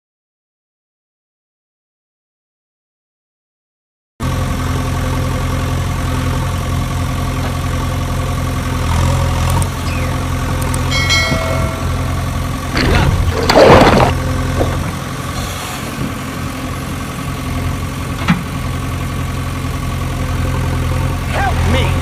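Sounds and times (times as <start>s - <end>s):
engine idling: 4.2s - 22.0s.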